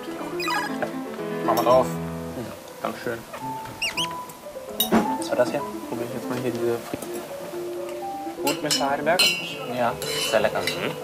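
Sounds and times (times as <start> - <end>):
background music: 0.0 - 11.0
comic high squeaks: 0.4 - 0.8, 3.8 - 4.2.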